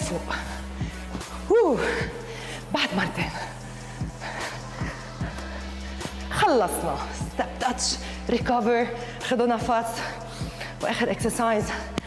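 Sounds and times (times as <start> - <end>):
upbeat workout music: 0.0 - 12.0.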